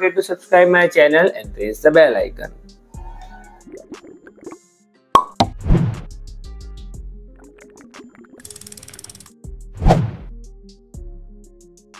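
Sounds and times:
sharp pop: 5.2s - 6.0s.

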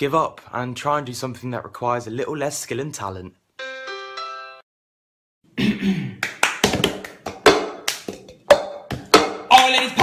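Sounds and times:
hands clapping: 6.2s - 10.0s.

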